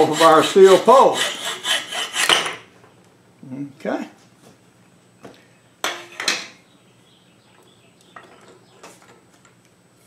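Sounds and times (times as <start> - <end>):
hacksaw cutting wood: 0.0 - 2.6.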